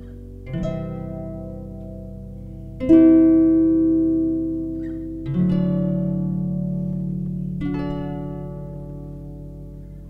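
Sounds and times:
harp chord plucked: 0.0s - 10.0s.

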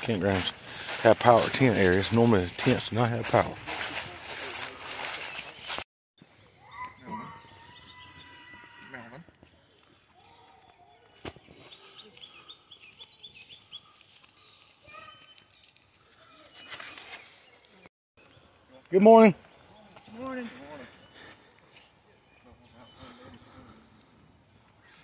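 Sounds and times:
songbirds chirping: 0.0s - 25.0s.

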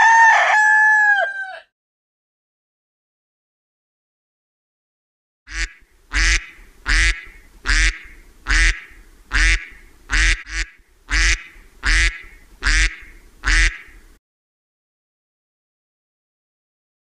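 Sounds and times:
duck quacking: 5.5s - 14.2s.

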